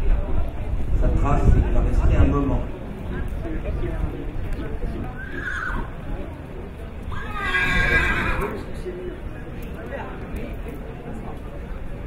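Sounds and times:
horse whinnying: 7.1 - 8.6.

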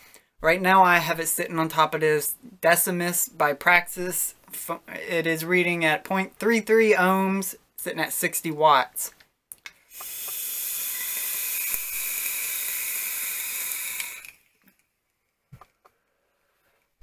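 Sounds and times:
vape atomizer hissing: 9.9 - 14.5.

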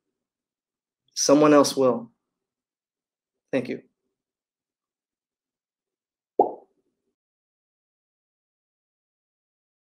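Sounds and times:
short dull plop: 6.4 - 6.6.

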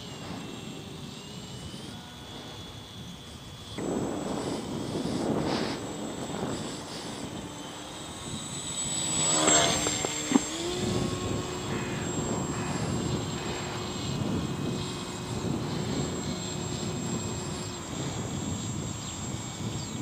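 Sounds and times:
electric motor and propeller humming: 0.0 - 20.0.

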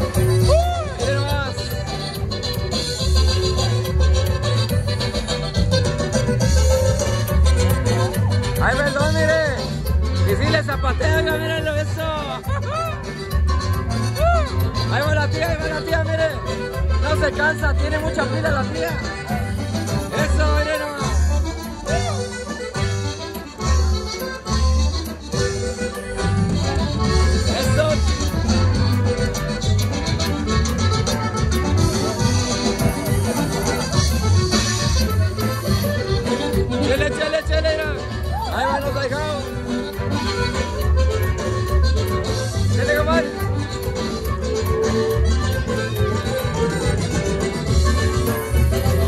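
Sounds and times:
accordion melody: 0.0 - 49.0
guitar: 0.0 - 49.0
steady bass beat: 0.0 - 49.0.

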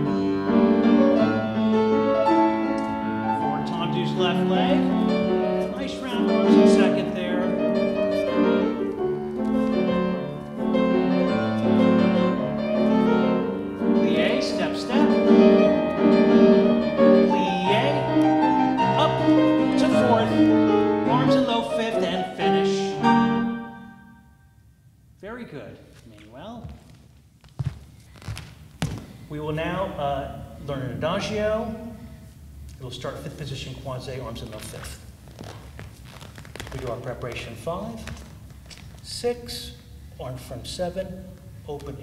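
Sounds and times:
grand piano playing: 0.0 - 24.6
man talking: 3.6 - 5.0, 5.6 - 8.8, 13.9 - 15.6, 17.2 - 18.2, 18.8 - 23.2, 25.2 - 26.8, 29.3 - 32.0, 32.8 - 35.0, 36.7 - 38.2, 39.0 - 42.0.

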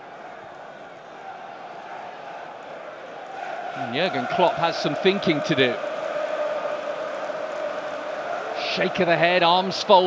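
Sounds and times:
stadium crowd din: 0.0 - 10.0.

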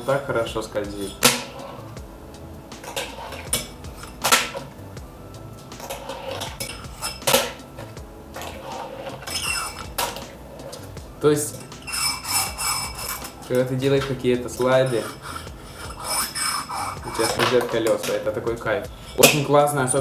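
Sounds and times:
fingerboard scraping and grinding: 2.8 - 4.8, 5.8 - 19.1.

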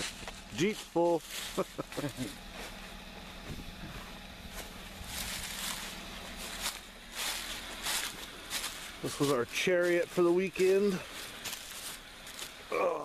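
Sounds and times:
footsteps crunching dry leaves: 0.0 - 13.0.

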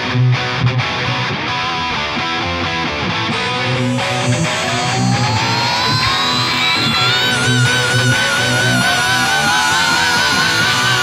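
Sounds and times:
distorted electric guitar riffing: 0.9 - 11.0
high gliding guitar note: 3.3 - 11.0.

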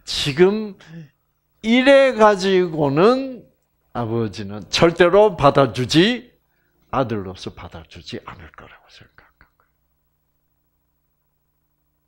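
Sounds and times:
faint steady hum: 0.0 - 12.0
man speaking: 0.1 - 6.4, 7.0 - 9.5.

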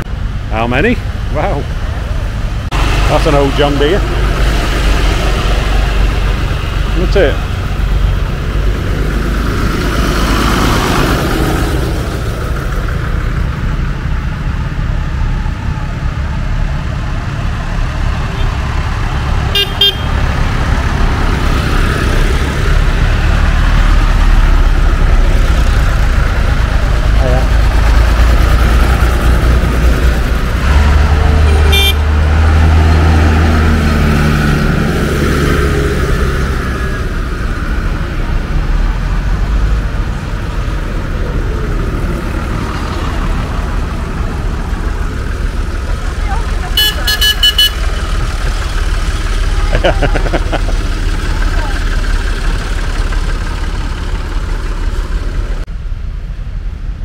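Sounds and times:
tractor engines running: 0.0 - 57.0
horn toots: 19.5 - 20.2, 31.4 - 32.1, 46.7 - 48.2.

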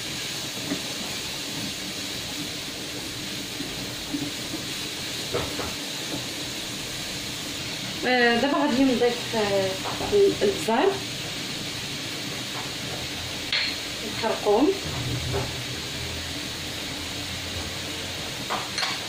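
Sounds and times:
vegetables sizzling in oil: 0.0 - 19.0.

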